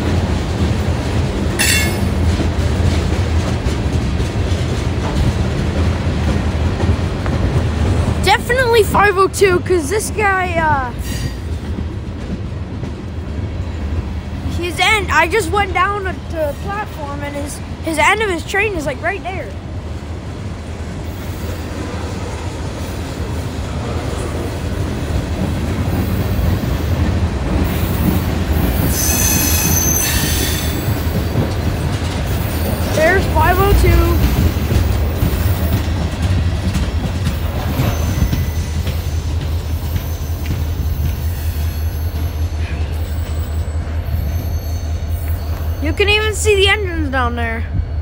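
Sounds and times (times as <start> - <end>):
train wheels rumbling on rail: 0.0 - 48.0.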